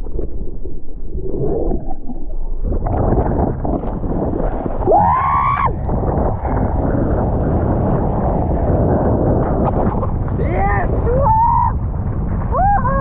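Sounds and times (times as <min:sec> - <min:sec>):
board splashing over water: 0:01.9 - 0:10.4
wind buffeting microphone: 0:02.6 - 0:13.0
high-pitched whoop: 0:04.9 - 0:05.8, 0:11.1 - 0:11.7, 0:12.5 - 0:13.0.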